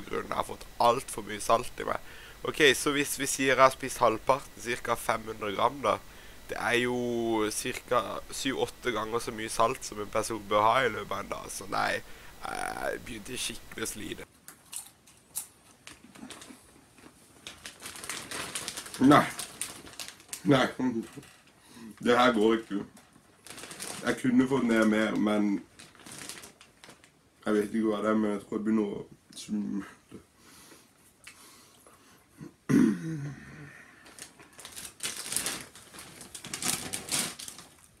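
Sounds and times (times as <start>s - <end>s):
plastic bag crinkling: 0.3s - 27.2s, 34.0s - 38.0s.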